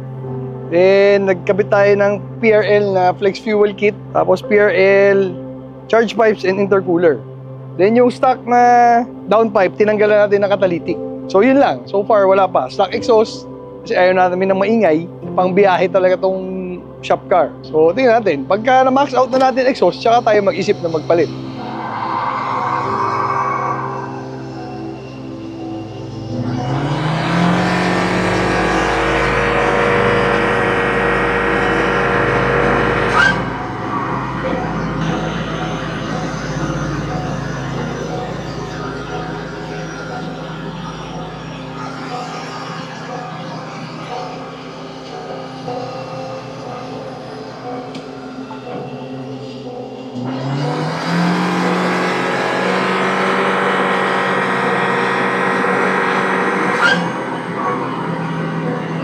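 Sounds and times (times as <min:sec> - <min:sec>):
car engine revving at full throttle: 0:25.6 - 0:46.1, 0:50.2 - 0:59.0.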